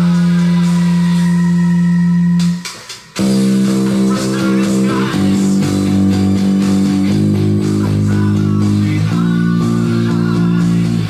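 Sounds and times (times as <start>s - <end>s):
electric bass playing: 0.0s - 11.0s
power metal backing track: 0.0s - 11.0s.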